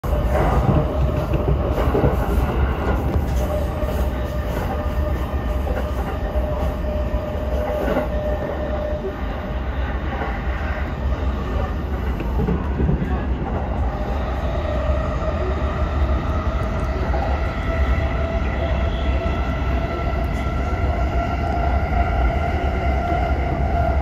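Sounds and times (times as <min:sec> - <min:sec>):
train rumble: 0:00.0 - 0:24.0.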